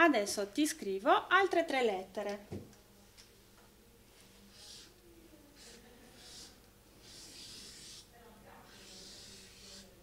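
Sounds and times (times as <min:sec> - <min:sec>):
marker scratching on paper: 0:04.5 - 0:05.0, 0:05.6 - 0:10.0.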